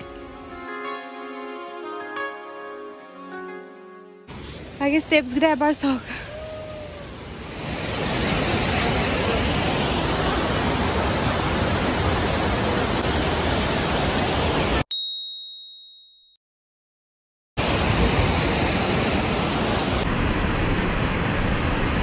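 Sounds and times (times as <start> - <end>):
waterfall rushing: 6.0 - 14.8, 17.6 - 20.5
high chime ringing: 14.9 - 16.4.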